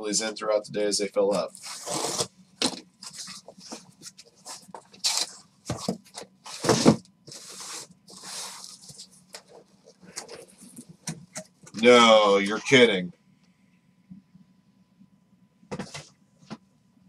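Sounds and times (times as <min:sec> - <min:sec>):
cardboard box scraping and rustling: 0:01.6 - 0:02.3.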